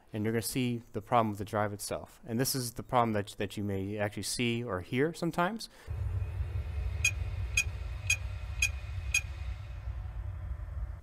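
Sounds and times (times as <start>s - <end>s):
low hum: 5.9s - 11.0s.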